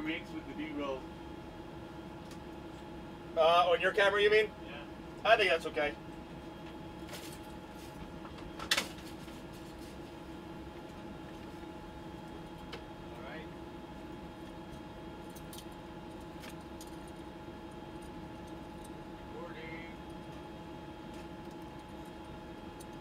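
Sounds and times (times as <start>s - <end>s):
cabin fans humming: 0.0s - 23.0s.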